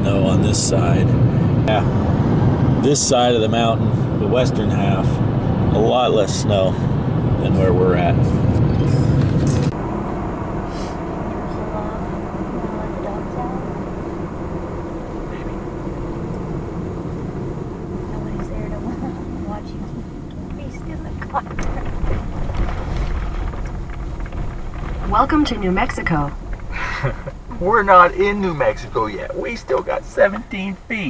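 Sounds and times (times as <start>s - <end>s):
car cabin road and engine noise: 0.0s - 31.0s.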